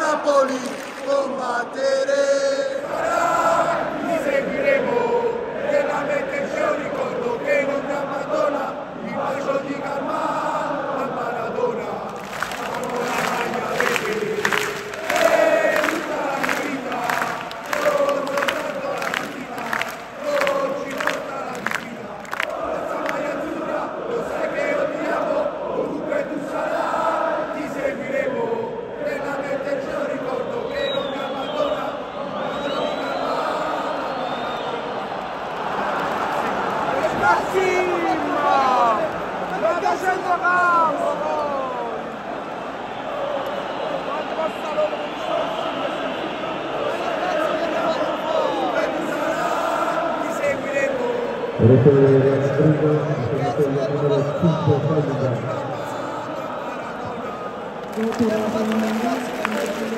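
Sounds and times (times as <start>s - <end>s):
crowd clapping in rhythm: 0.0s - 1.9s, 11.6s - 26.0s, 35.1s - 40.4s, 57.7s - 59.9s
stadium crowd chanting and singing: 0.0s - 59.9s.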